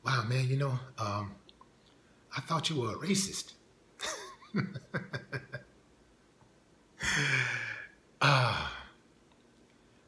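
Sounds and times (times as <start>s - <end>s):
man sighing: 7.0s - 9.0s.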